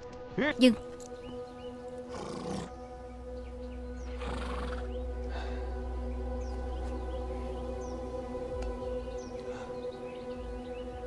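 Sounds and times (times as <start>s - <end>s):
background music with low drone: 0.0s - 11.0s
horses calling: 2.0s - 2.7s, 4.1s - 4.9s.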